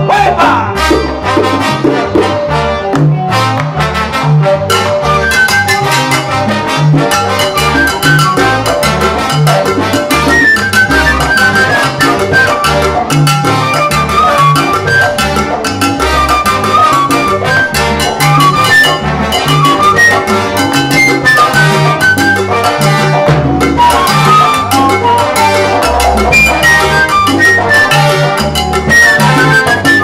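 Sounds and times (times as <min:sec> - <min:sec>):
brass melody: 0:00.0 - 0:30.0
rhythmic bass line: 0:00.0 - 0:30.0.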